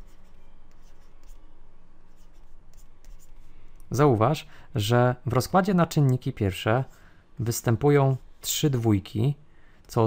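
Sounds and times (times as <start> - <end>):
stylus writing on a tablet: 0.0 - 3.6.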